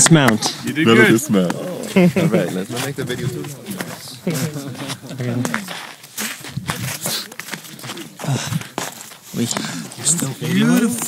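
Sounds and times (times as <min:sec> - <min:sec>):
faint voices: 0:00.0 - 0:11.0
footsteps crunching on snow: 0:00.9 - 0:11.0.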